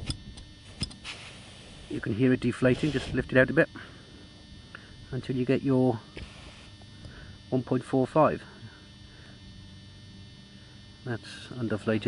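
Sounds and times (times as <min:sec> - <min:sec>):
air hissing from valve: 0:00.7 - 0:02.1, 0:06.2 - 0:06.8.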